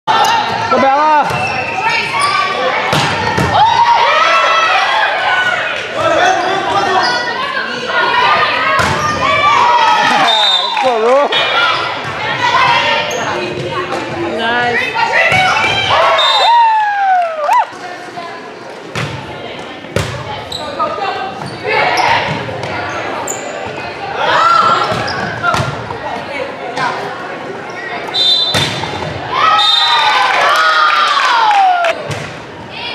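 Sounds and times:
people shouting in a hall: 0.1 - 13.2, 14.9 - 17.8, 24.0 - 25.6, 29.2 - 32.0.

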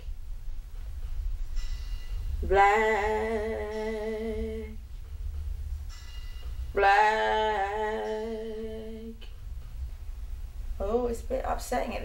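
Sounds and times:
woman singing a long note: 2.4 - 4.8, 6.8 - 9.2.

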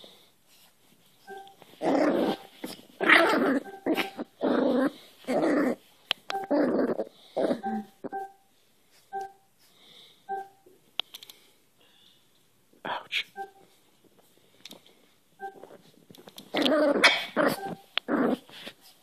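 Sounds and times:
puppy whimpering: 1.3 - 4.9, 16.6 - 18.4
puppy play-growling: 1.8 - 7.6, 16.5 - 18.8.

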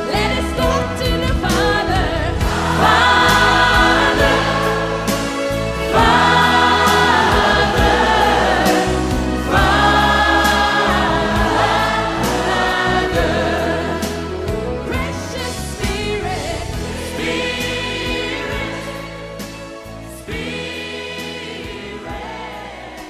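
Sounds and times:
sustained bass: 0.0 - 23.0
choir singing held chords: 1.4 - 23.0.

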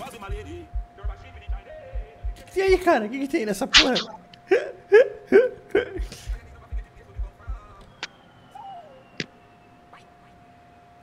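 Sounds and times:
laughter: 4.5 - 6.3.

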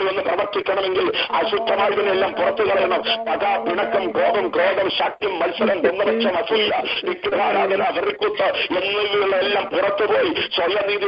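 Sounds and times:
person praying over telephone: 0.0 - 11.0.

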